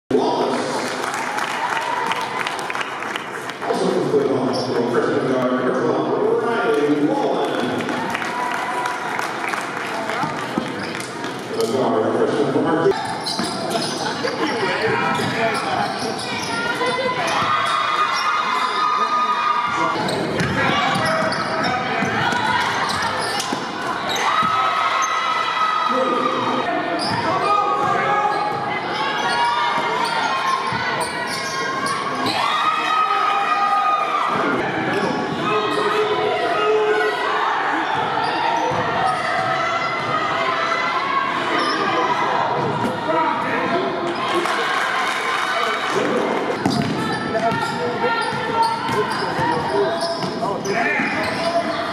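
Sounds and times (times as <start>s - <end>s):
basketball bouncing on wooden floor: 20.4s - 21.2s.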